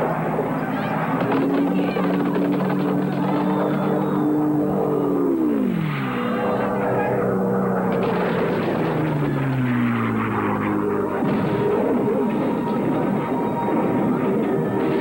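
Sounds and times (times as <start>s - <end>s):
propeller plane engines droning overhead: 0.0s - 15.0s.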